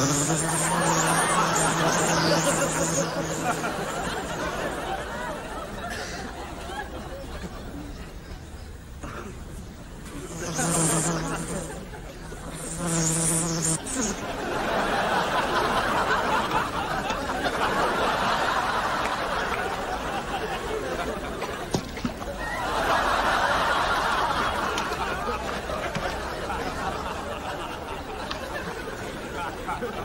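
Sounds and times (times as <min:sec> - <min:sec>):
fly buzzing: 0:00.0 - 0:04.7, 0:10.0 - 0:14.3
audience laughter: 0:00.0 - 0:08.3, 0:10.0 - 0:12.7, 0:13.8 - 0:30.0.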